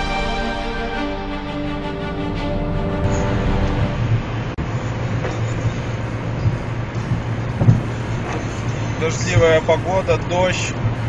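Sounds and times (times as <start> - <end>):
car cabin drone: 1.2 - 11.0
road and rain hiss: 3.0 - 11.0.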